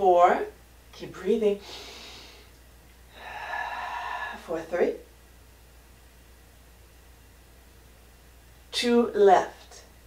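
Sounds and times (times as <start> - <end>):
woman breathing with effort: 1.6 - 4.4.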